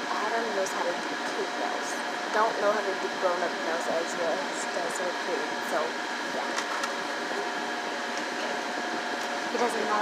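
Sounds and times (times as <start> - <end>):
faint continuous whine: 0.0 - 10.0.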